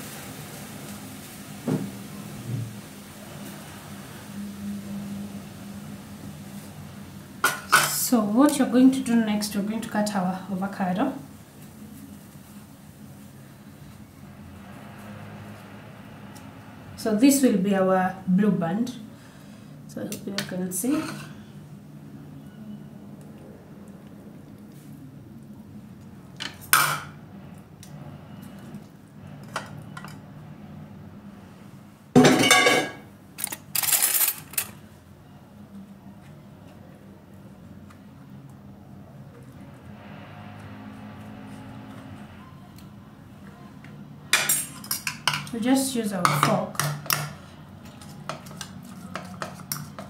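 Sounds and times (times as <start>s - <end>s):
fork scraping ceramic bowl: 47.9s - 50.0s.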